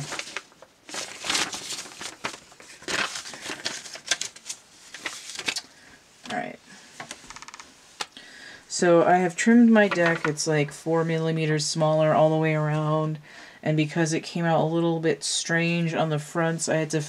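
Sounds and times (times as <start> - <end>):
paper rustling and crinkling: 0.0 - 7.4, 9.6 - 10.4.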